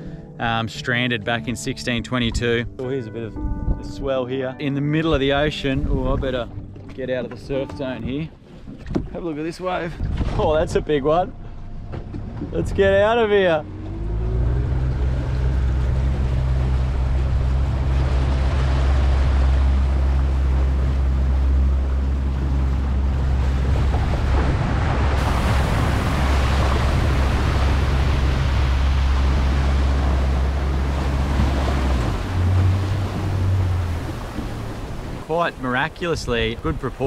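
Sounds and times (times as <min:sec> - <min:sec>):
wind and water rushing: 0:04.8 - 0:37.0
motorboat engine drone: 0:10.8 - 0:37.0.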